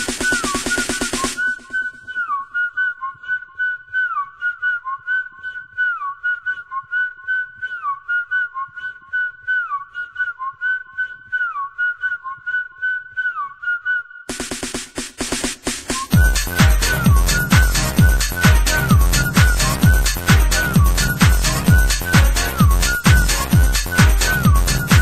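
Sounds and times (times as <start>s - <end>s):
whistle melody of dance track: 0.0s - 25.0s.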